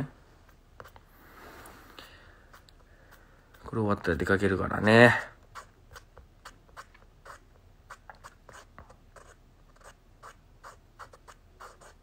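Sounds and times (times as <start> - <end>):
faint scratching and rubbing: 4.8 - 12.0.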